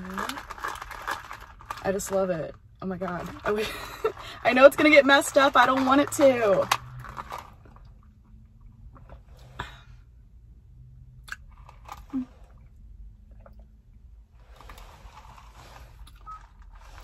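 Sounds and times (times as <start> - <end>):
sipping through a plastic straw: 14.5 - 17.0.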